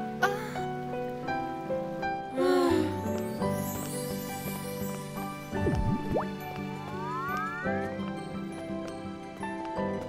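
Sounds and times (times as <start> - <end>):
soft background music: 0.0 - 10.0
cartoon water-drop bloop: 5.6 - 6.3
rising tones: 5.6 - 8.0.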